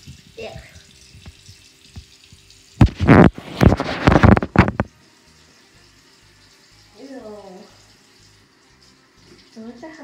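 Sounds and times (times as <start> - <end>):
microphone handling rustling: 2.8 - 4.9.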